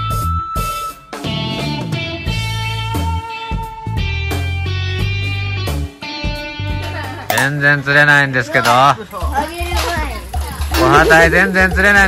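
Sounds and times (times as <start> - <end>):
background music with low beat: 0.0 - 12.0
voices talking: 7.2 - 12.0.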